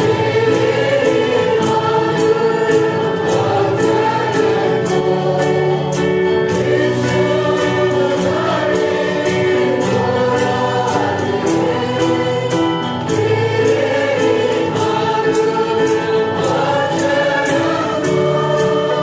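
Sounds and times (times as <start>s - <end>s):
choir singing gospel music: 0.0s - 19.0s
steady ticking beat: 0.0s - 19.0s.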